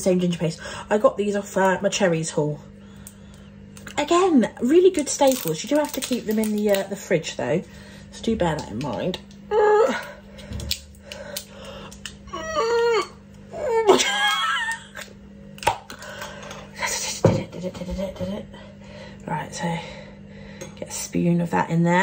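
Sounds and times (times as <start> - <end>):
low steady hum: 0.0 - 22.0
woman vocalising: 9.5 - 10.2, 12.3 - 14.8
woman laughing: 12.4 - 15.1.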